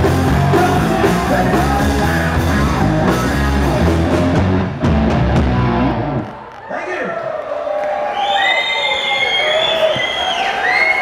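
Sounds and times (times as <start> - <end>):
audience cheering: 5.4 - 11.0
long high whistles: 8.1 - 11.0.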